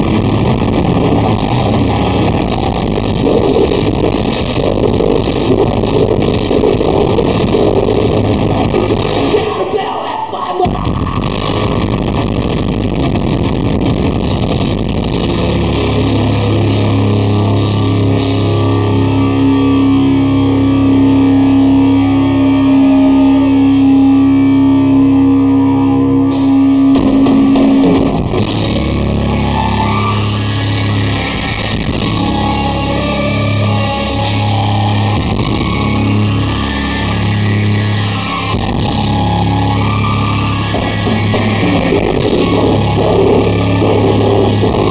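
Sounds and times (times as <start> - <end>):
fast drumming: 0.0 - 9.5, 40.8 - 44.9
distorted guitars: 0.0 - 44.9
metal band playing live: 0.0 - 44.9.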